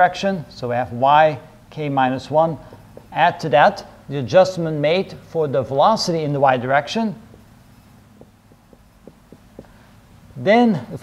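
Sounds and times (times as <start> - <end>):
low room hum: 0.0 - 11.0
marker tapping on whiteboard: 2.3 - 3.9, 7.2 - 7.6, 8.2 - 9.9.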